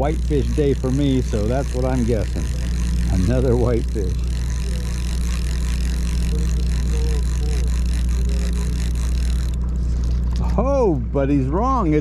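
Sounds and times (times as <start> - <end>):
boat engine droning: 0.0 - 12.0.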